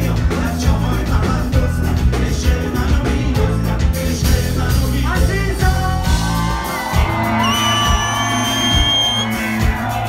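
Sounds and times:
live band playing pop: 0:00.0 - 0:10.0.

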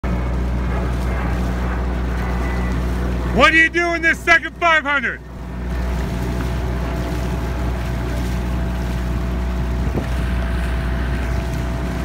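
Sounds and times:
boat outboard motor running: 0:00.0 - 0:12.0.

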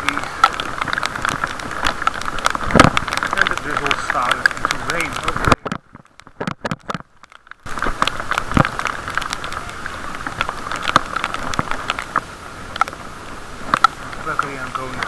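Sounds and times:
rain ticking on waterproof case: 0:00.0 - 0:15.0
steady hiss: 0:07.6 - 0:15.0.

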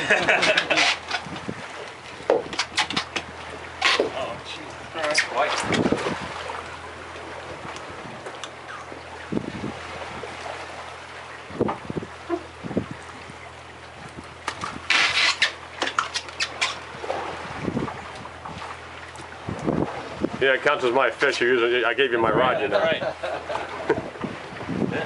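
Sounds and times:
boat engine idling: 0:00.0 - 0:25.0
water noise: 0:00.0 - 0:25.0
wind: 0:00.0 - 0:25.0.

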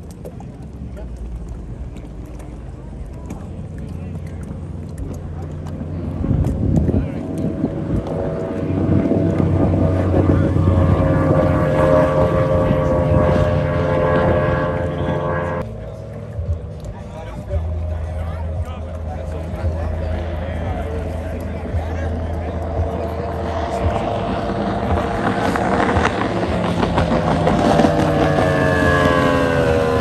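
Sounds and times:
boat engine at full throttle: 0:00.0 - 0:30.0.

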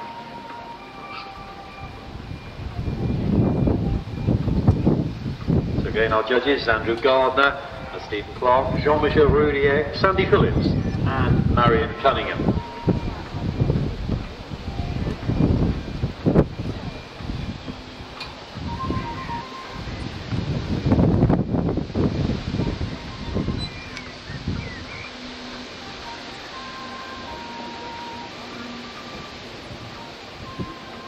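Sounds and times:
wind buffeting microphone: 0:01.4 - 0:31.0
faint background music: 0:05.7 - 0:20.3.

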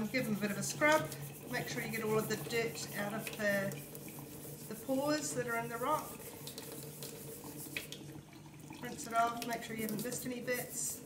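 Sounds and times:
toothbrush scrubbing a rock: 0:00.0 - 0:08.1, 0:09.0 - 0:11.0.

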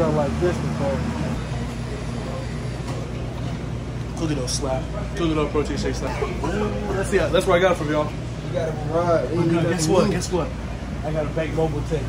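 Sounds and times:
kitchen ventilation hum: 0:00.0 - 0:12.0.

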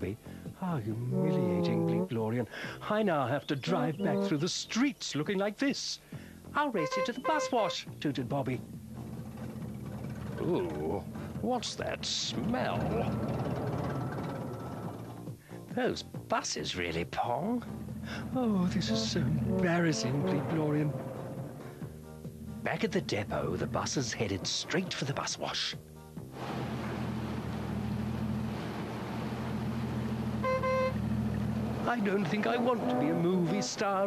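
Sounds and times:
bus engine rumble: 0:03.6 - 0:04.4, 0:06.8 - 0:15.4, 0:17.4 - 0:25.6, 0:26.2 - 0:34.0
short horn beep: 0:06.8 - 0:07.8, 0:30.4 - 0:31.0
bus wash mechanical hum: 0:26.3 - 0:32.8.

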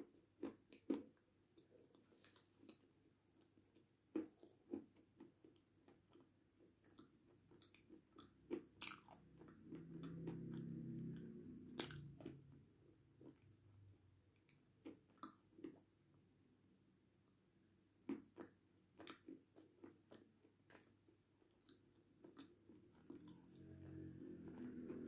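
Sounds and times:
low hum: 0:09.4 - 0:13.2.

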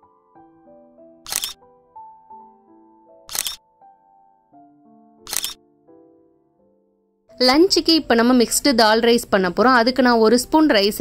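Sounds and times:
camera shutter click: 0:01.2 - 0:01.6, 0:03.3 - 0:03.6, 0:05.3 - 0:05.6.

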